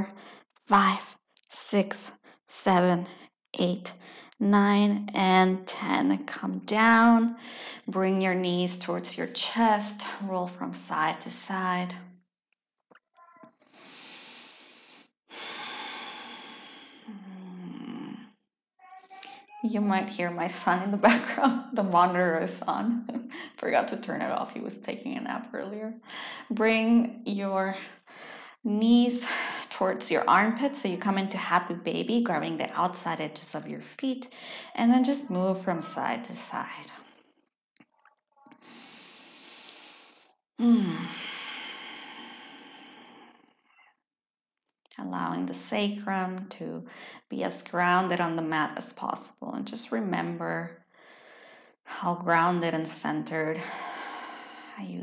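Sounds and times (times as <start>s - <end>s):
child's voice: 18.8s - 20.2s, 35.7s - 36.2s.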